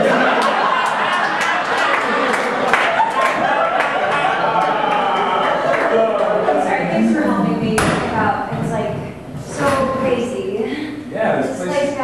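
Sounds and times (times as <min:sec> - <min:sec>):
voices: 0:03.4 - 0:12.0.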